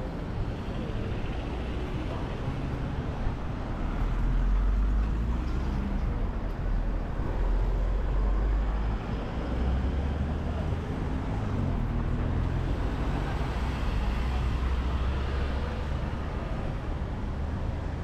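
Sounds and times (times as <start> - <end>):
busy city street noise: 0.0 - 18.0.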